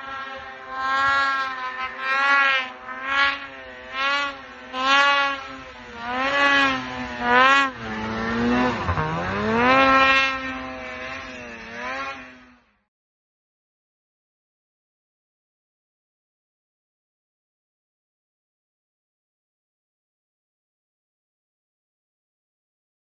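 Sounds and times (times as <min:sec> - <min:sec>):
snowmobile engine revving: 0:00.0 - 0:12.9.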